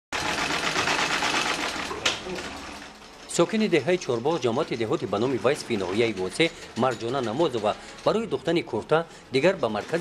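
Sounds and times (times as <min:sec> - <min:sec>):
sewing machine stitching: 0:00.1 - 0:10.0.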